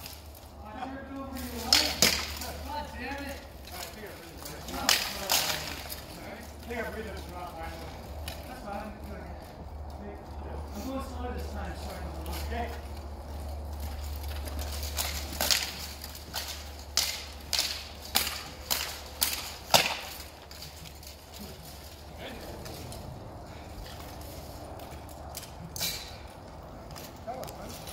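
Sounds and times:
swords clashing on armour: 1.4 - 2.6, 3.3 - 6.1, 14.3 - 20.8.

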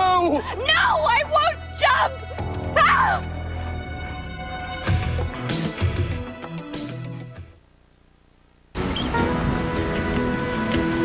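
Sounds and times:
dramatic music: 8.8 - 11.0
soft music tones: 8.8 - 11.0.

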